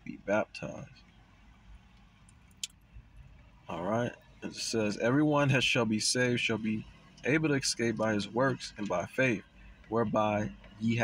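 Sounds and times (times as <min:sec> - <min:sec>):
faint car rumble from inside: 0:00.0 - 0:11.0.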